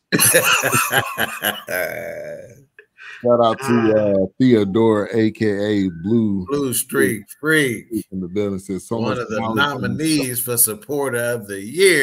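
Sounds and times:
men laughing: 0:00.2 - 0:04.0, 0:09.0 - 0:10.3.

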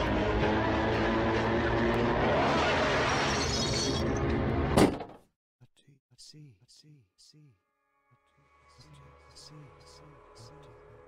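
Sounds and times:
noisy horror drone: 0:00.0 - 0:03.3.

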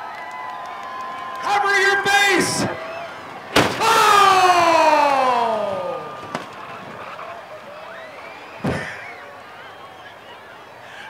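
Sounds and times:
car crashing into plastic toilet: 0:03.6 - 0:03.9.

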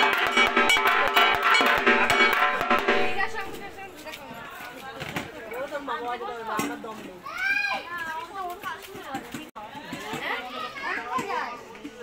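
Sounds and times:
children talking and calling: 0:00.5 - 0:12.0.

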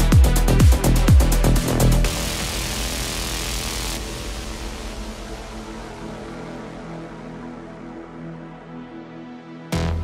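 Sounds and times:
white-noise sweep: 0:00.0 - 0:07.6.

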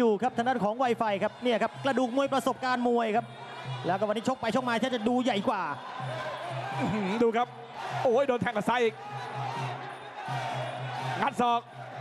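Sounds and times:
commentator speaking: 0:00.0 - 0:05.8, 0:06.7 - 0:09.3, 0:11.2 - 0:11.7.

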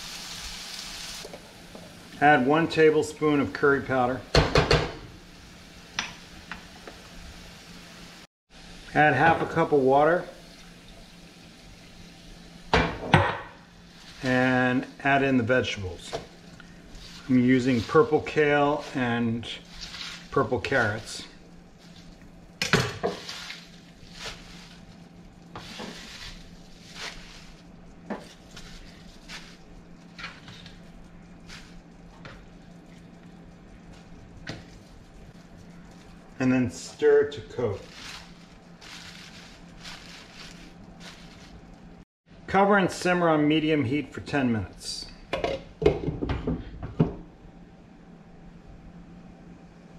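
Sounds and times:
food sizzling in a frying pan: 0:00.0 - 0:03.0, 0:04.8 - 0:14.9
low sizzle from pan: 0:00.0 - 0:42.0
vegetables rustling and scraping: 0:13.7 - 0:22.3, 0:23.0 - 0:33.1, 0:33.9 - 0:42.0.

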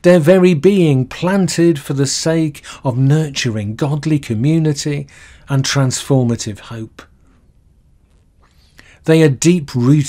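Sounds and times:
person speaking: 0:00.0 - 0:07.1, 0:09.0 - 0:10.0
background hiss: 0:00.0 - 0:10.0
person breathing: 0:05.1 - 0:05.5, 0:08.4 - 0:09.0.

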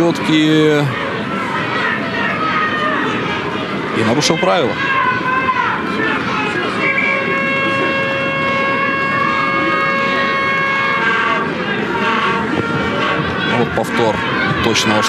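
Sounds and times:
voices outdoors: 0:00.0 - 0:15.0
steady pitched horn: 0:06.9 - 0:12.4.

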